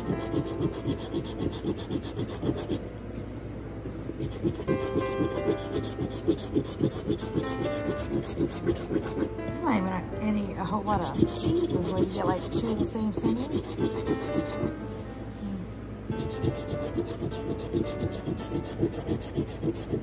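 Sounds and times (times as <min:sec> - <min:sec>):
coin scraping scratch-off ticket: 0:00.0 - 0:02.8, 0:04.2 - 0:09.3, 0:10.9 - 0:14.7.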